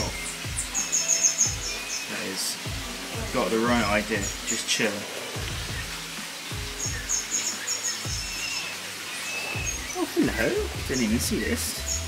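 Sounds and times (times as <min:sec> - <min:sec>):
background music with low beat: 0:00.0 - 0:12.0
small birds chirping: 0:00.0 - 0:12.0.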